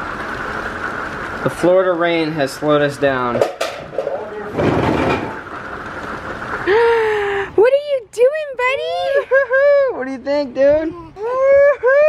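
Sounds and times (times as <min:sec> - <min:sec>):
toddler vocalizing: 0:10.9 - 0:11.5.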